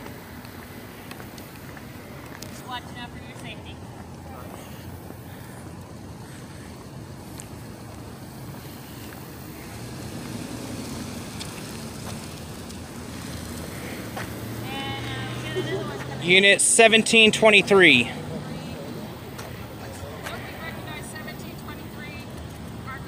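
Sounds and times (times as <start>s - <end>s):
urban background noise: 0.0s - 23.0s.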